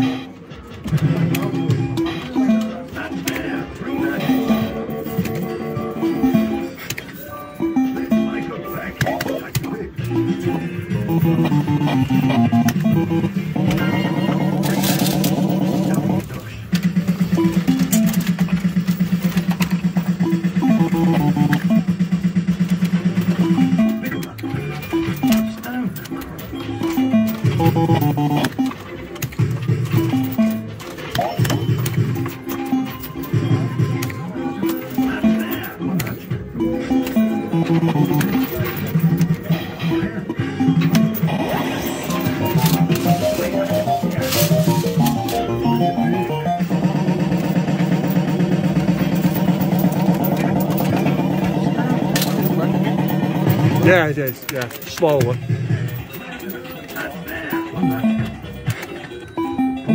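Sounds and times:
fruit machine jingles and bleeps: 3.8 - 8.9, 10.1 - 16.2, 23.4 - 25.9, 26.5 - 29.0, 30.0 - 46.9, 57.0 - 58.6, 59.2 - 59.9.

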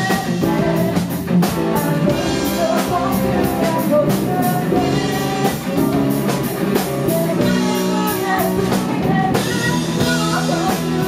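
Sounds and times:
bass guitar: 0.0 - 11.0
drum kit: 0.0 - 11.0
electric guitar: 0.0 - 11.0
keyboards: 0.0 - 11.0.

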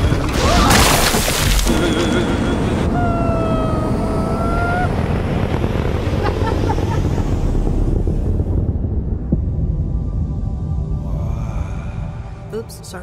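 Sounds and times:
held cry: 1.7 - 5.0
loud rumbling roar: 1.7 - 9.3.

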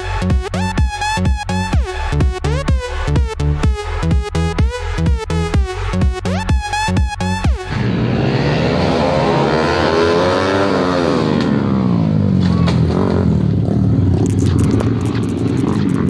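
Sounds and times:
electronic dance music: 0.0 - 8.2
motorcycle engines under load: 7.7 - 16.0.

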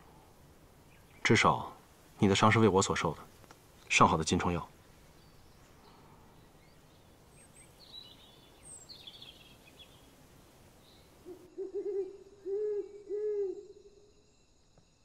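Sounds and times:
faint high bird chirps: 5.1 - 14.2
owl hooting: 11.0 - 14.1.

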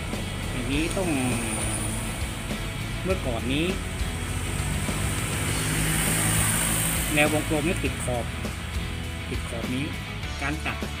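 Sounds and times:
engine idling: 0.0 - 10.2.

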